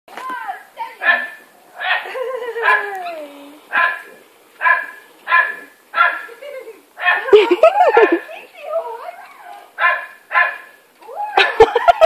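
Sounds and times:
dog barking excitedly: 1.0 - 2.9, 3.7 - 6.3, 7.0 - 8.3, 9.8 - 10.7.

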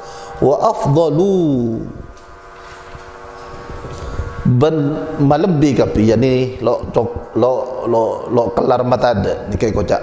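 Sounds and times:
steady hum of held tones: 0.0 - 10.0
man speaking: 0.4 - 2.0, 4.4 - 10.0.

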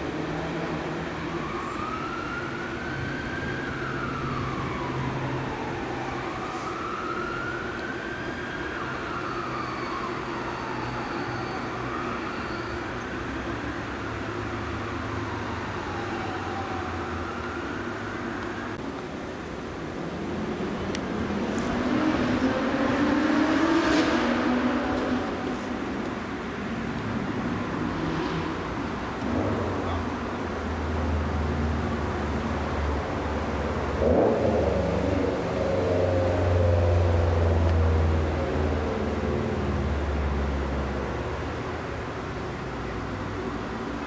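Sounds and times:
road traffic passing: 0.0 - 44.0.

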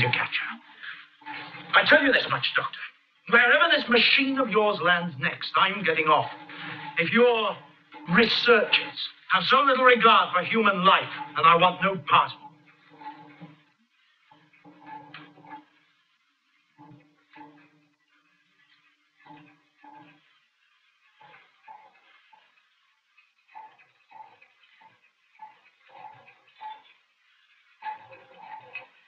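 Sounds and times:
steady hum: 0.0 - 29.0.

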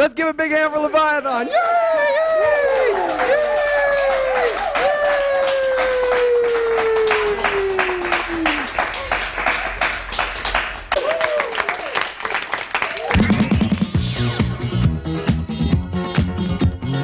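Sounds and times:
high-pitched cheering: 0.9 - 9.8, 10.9 - 12.0, 12.8 - 14.0
small group clapping: 1.0 - 13.9.

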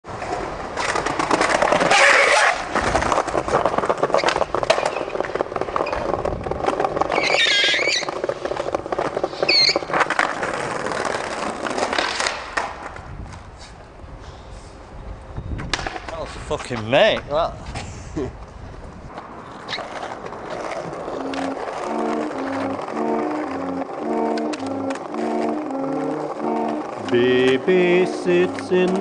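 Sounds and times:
skateboard wheels rolling on pavement: 0.0 - 29.0
skateboard clacking: 0.2 - 13.1, 15.6 - 16.2, 19.1 - 29.0.

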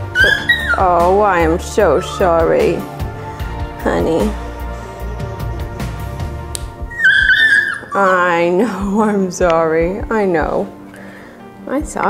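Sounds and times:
puppy whining cry: 0.0 - 3.1, 6.9 - 8.5
background music: 0.0 - 12.0.

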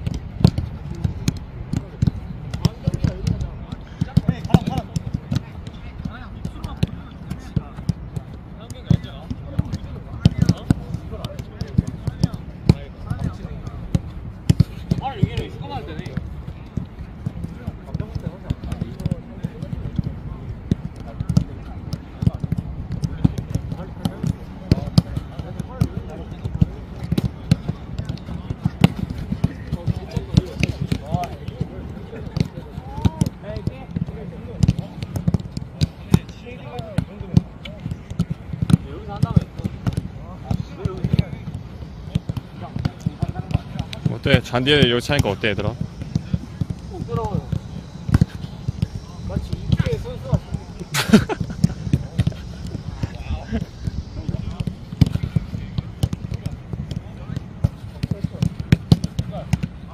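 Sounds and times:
footballs being kicked: 0.0 - 59.9.

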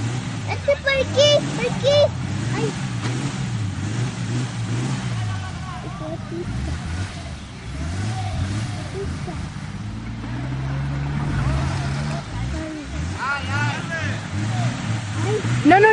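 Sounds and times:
off-road vehicle engine revving: 0.0 - 15.9.

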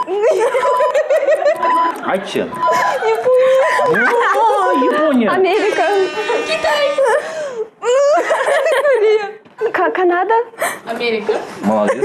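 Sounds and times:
woman giggling: 0.0 - 1.9, 2.6 - 5.6, 6.7 - 9.7, 10.6 - 12.0
short steady beeps: 0.0 - 7.2.

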